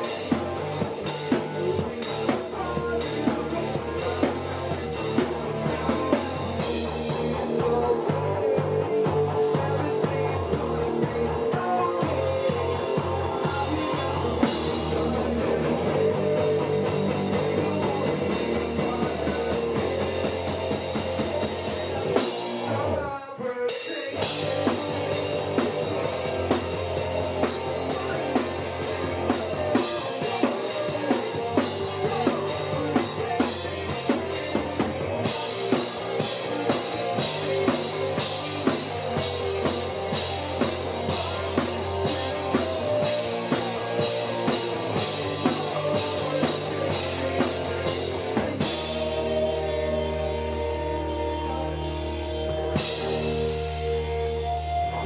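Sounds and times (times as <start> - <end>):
bass guitar: 0.0 - 23.2, 24.1 - 55.0
drum kit: 0.0 - 55.0
electric guitar: 0.0 - 55.0.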